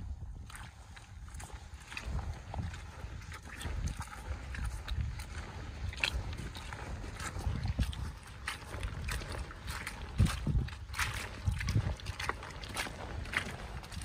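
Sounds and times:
footsteps squelching in mud: 0:00.0 - 0:14.0
wet leaves crackling underfoot: 0:04.9 - 0:14.0.

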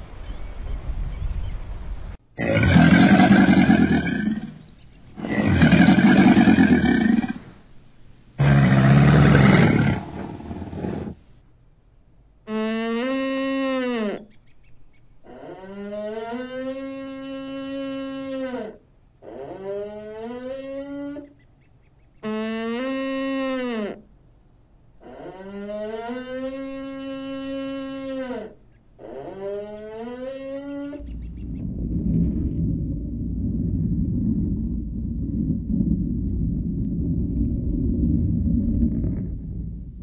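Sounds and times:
loud low rumble: 0:31.0 - 0:40.0.

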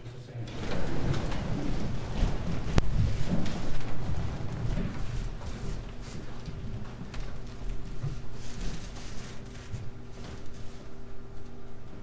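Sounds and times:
rustling clothes: 0:00.5 - 0:11.0
shuffling feet: 0:00.8 - 0:11.0.

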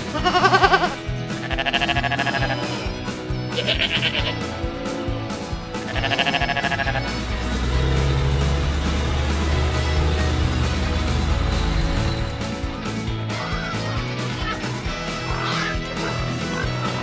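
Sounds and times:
sheep bleating: 0:00.0 - 0:02.9, 0:03.5 - 0:04.5, 0:05.7 - 0:07.4
background music: 0:00.0 - 0:17.0
steady low rumble: 0:06.8 - 0:13.0.

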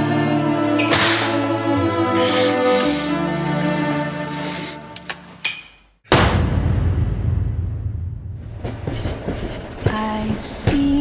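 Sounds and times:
sharp whip crack: 0:00.8 - 0:01.5.

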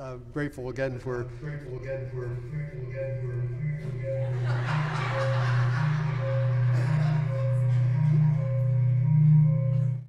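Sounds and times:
low drone of held tones: 0:01.4 - 0:10.0
pulsing higher tone: 0:01.4 - 0:10.0.

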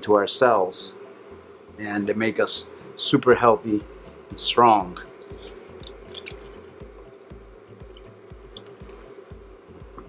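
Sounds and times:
faint background music: 0:00.0 - 0:10.0
liquid splashes and drips: 0:05.8 - 0:06.6, 0:07.9 - 0:09.0.

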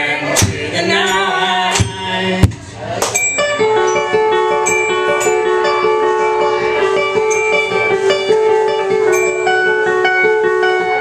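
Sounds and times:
ringing arpeggio notes: 0:03.2 - 0:11.0.

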